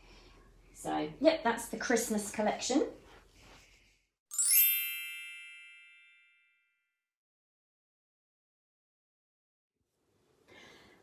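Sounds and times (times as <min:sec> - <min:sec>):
magical bell-like chime: 0:04.3 - 0:06.8.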